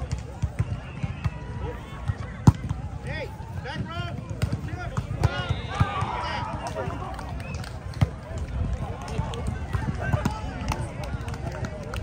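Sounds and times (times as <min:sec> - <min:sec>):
shouts and chatter: 0:00.0 - 0:12.0.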